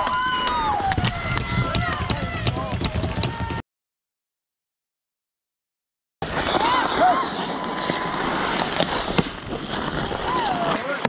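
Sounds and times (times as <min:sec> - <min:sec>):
skates scraping on ice: 0:06.2 - 0:11.0
players shouting: 0:06.4 - 0:08.4
hockey sticks and puck clacking: 0:06.4 - 0:11.0.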